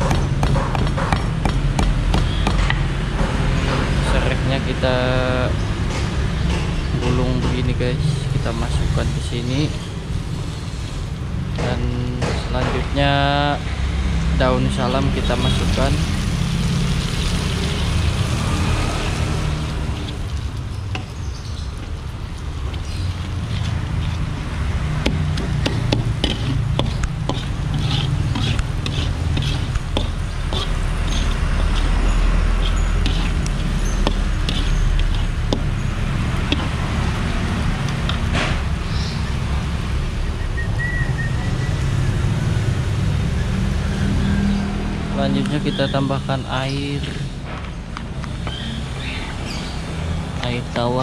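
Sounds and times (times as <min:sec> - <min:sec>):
food stir-frying in a wok: 0:15.6 - 0:39.1
metal spatula scraping a pan: 0:25.2 - 0:38.3.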